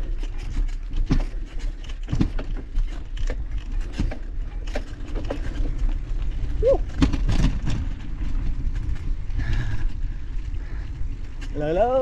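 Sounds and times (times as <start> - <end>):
bicycle rattling over bumps: 0.0 - 12.0
wind and tyre rumble: 0.0 - 12.0.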